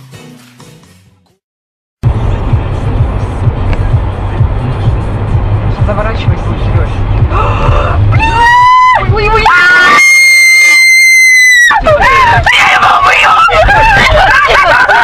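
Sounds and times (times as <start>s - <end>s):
car road rumble: 2.0s - 15.0s
woman screaming: 8.1s - 15.0s
woman talking excitedly: 8.5s - 9.8s, 11.8s - 15.0s.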